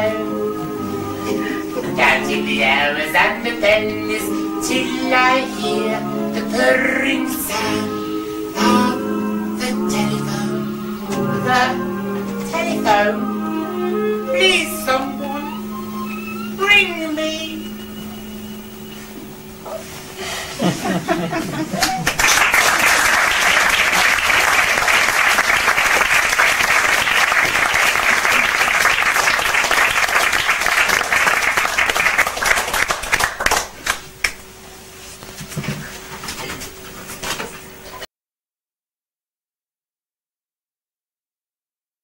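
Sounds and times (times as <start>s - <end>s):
faint hiss: 0.0s - 21.4s
low hum of held tones: 0.0s - 22.1s
audience applause: 21.0s - 34.4s.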